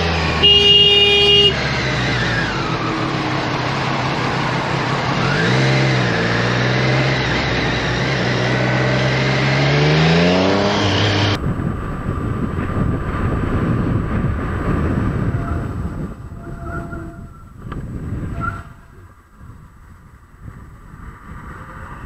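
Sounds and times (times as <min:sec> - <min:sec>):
motorcycle engine running: 0:00.0 - 0:16.5
wind noise: 0:00.0 - 0:22.0
horn blast: 0:00.3 - 0:01.8.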